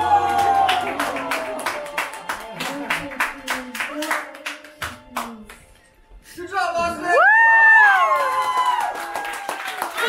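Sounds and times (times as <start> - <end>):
hands clapping rhythmically: 0.0 - 5.9, 7.8 - 10.0.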